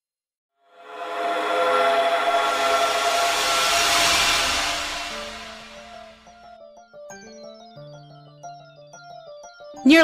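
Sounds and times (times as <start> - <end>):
rising hiss: 0.8 - 6.4.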